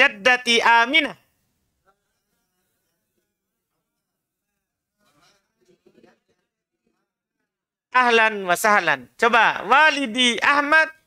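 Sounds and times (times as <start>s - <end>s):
man speaking: 0.0s - 1.3s, 7.9s - 11.0s.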